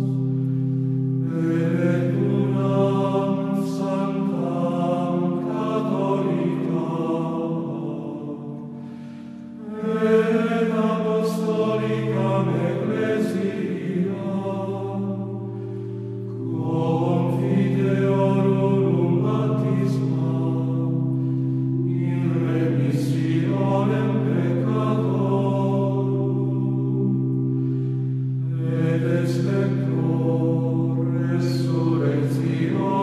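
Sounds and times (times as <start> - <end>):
choral chant: 0.0 - 33.0.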